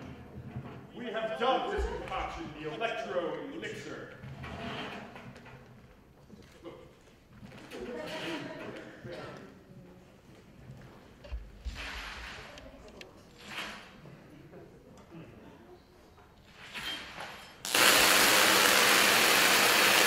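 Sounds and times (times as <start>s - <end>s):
faint indistinct speech: 12.4s - 16.3s
short hissing sounds: 17.7s - 20.0s.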